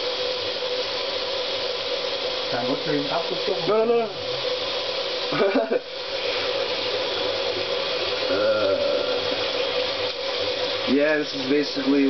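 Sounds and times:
tap water running into sink: 0.0 - 12.0
whine from faucet pipes: 0.0 - 12.0.

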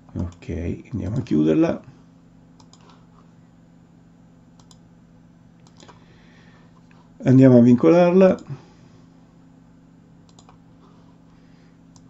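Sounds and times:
steady low hum: 0.0 - 12.0
computer clicks: 2.6 - 3.0, 4.6 - 4.8, 5.6 - 6.0, 10.2 - 10.6.

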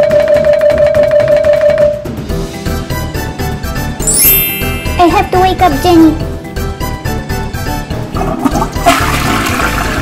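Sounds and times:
toy toilet flushing: 8.1 - 10.0.

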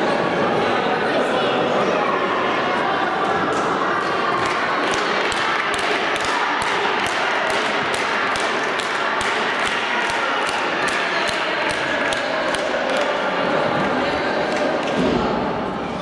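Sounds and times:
hubbub of voices: 0.0 - 16.0
spectators clapping rhythmically: 3.5 - 15.0.

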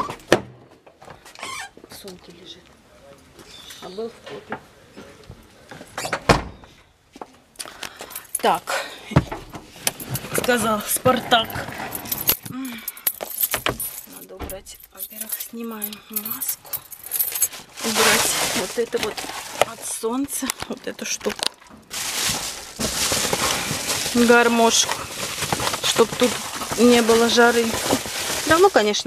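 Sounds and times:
rustle of handling things: 9.6 - 14.3, 14.9 - 29.0
metallic jingle: 11.4 - 17.6.

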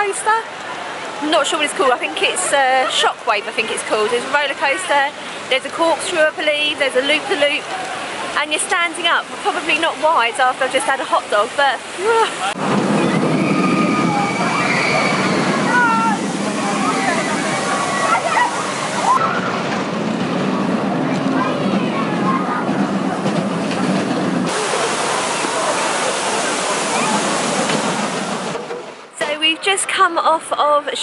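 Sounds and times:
roller coaster train rushing: 12.4 - 29.2.

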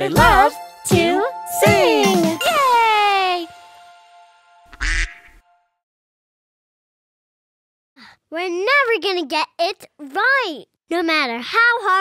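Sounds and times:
child's song singing: 0.0 - 3.5
cartoon duck quack: 4.7 - 5.4.

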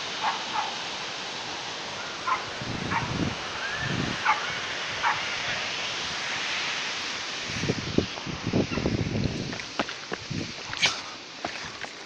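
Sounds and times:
steady outdoor hiss: 0.0 - 12.0
footsteps on dirt trail: 7.5 - 12.0.

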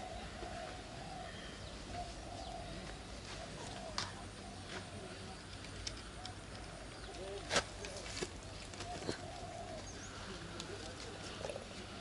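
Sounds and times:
faint bird calls: 0.0 - 12.0
low voices: 0.0 - 12.0.

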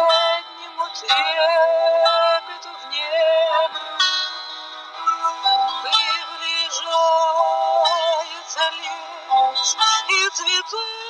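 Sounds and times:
person singing with vibrato: 0.0 - 4.1, 5.0 - 11.0
instrumental backing track: 0.0 - 11.0.

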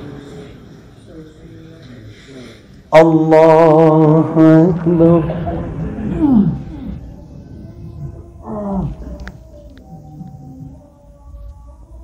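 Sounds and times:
low steady hum: 2.7 - 12.0
man's drawn-out voice: 2.9 - 9.4.

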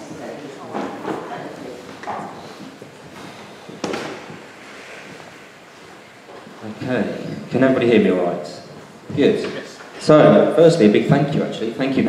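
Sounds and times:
low room noise: 0.0 - 12.0
sharp knock echoing in hall: 3.7 - 4.6.

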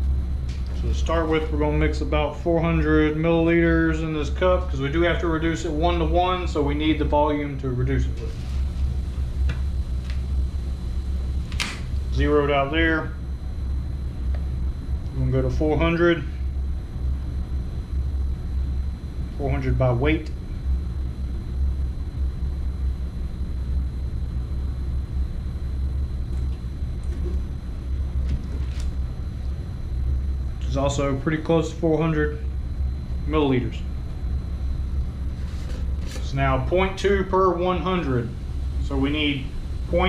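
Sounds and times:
low background rumble: 0.0 - 40.0
steady low hum: 0.0 - 40.0.

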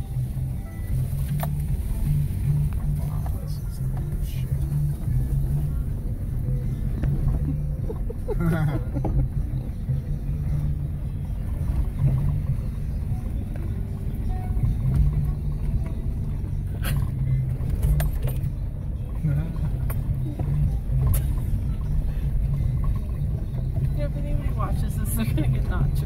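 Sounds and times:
vehicle engine rumble: 0.0 - 26.0.

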